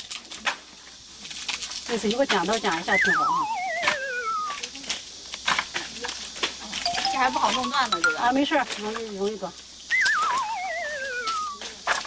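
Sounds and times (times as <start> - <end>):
warbling comic sound effect: 6.9 - 8.3.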